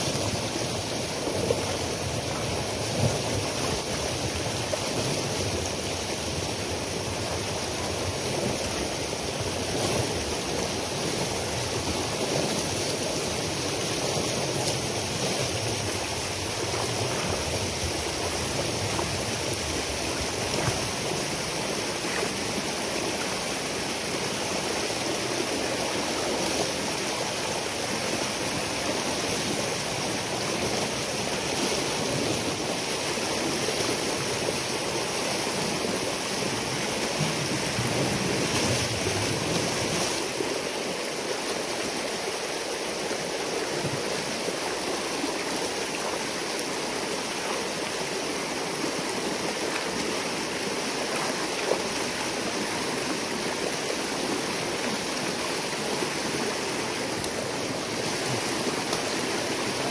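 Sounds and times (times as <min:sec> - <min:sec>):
water rushing: 0:00.0 - 0:59.9.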